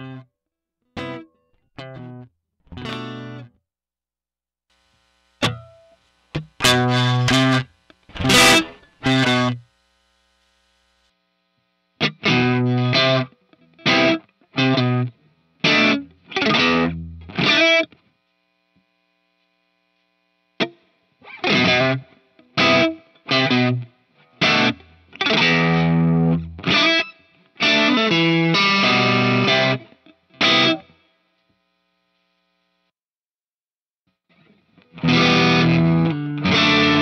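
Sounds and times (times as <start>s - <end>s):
distorted electric guitar chords: 0.0s - 0.3s, 1.0s - 3.6s, 4.8s - 11.1s, 11.9s - 18.0s, 20.6s - 30.9s, 34.4s - 37.0s.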